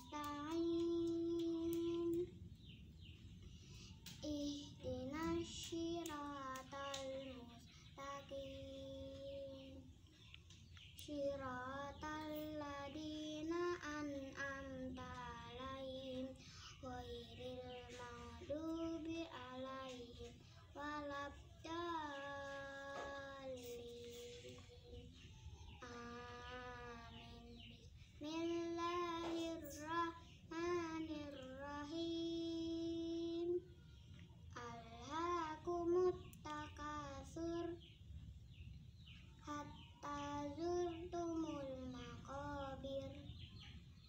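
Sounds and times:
girl chanting melodically: 0.0 - 33.8, 34.5 - 38.0, 39.0 - 43.8.

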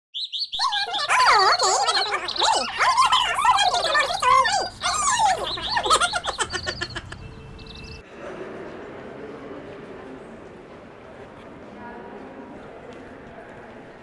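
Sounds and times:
birds chirping and warbling: 0.2 - 8.0.

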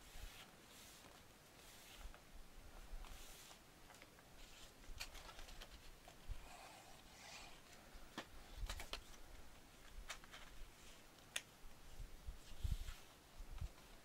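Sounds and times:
paper rustling: 3.0 - 6.2, 9.9 - 11.0.

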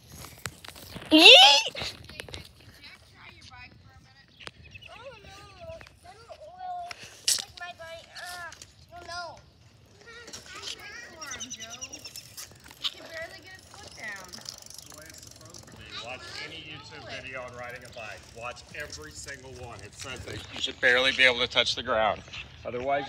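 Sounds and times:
children talking and calling out: 1.0 - 14.8, 15.5 - 17.4.

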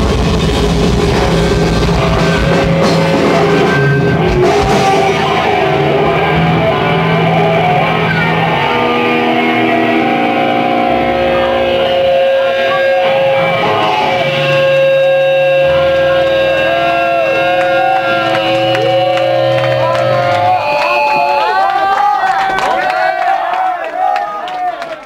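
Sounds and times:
bending guitar notes: 0.0 - 21.4
live rock band playing loudly: 0.0 - 21.6.

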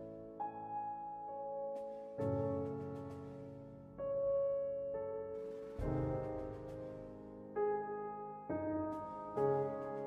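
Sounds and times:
soft piano music: 0.0 - 10.0.

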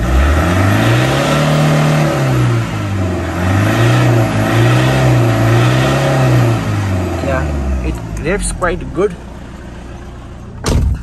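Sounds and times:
diesel engine idling: 0.0 - 11.0
car door slamming: 10.6 - 11.0.

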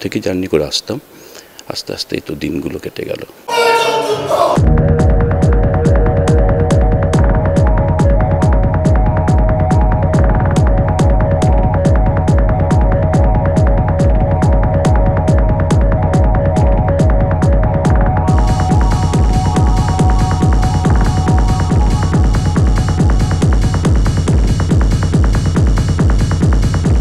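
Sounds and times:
deep throbbing electronic pulse: 4.6 - 27.0.

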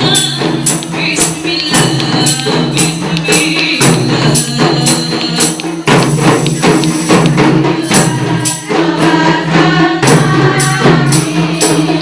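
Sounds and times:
women singing together: 0.0 - 6.0, 7.0 - 12.0.

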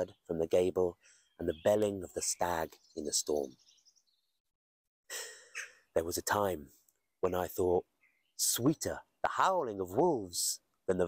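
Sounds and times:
man breathing in: 5.1 - 5.6.

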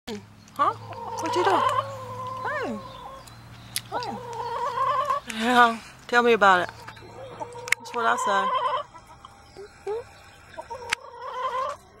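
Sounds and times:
chicken wavering call: 0.9 - 3.3, 3.9 - 5.3, 6.8 - 12.0.

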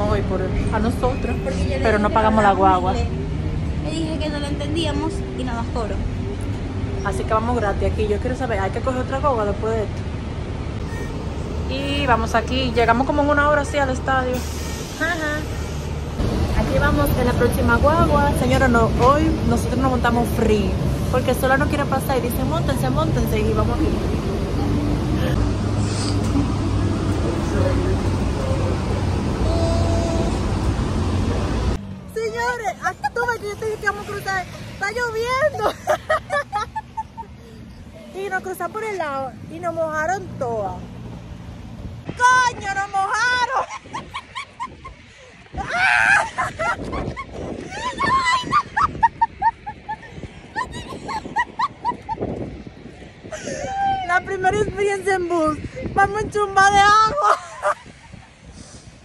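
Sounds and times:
bus engine and road rumble: 0.0 - 59.0
wind rumbling on microphone: 32.4 - 59.0
women laughing: 32.7 - 33.6, 35.3 - 38.2, 43.4 - 52.6, 53.2 - 54.5, 57.0 - 58.5.

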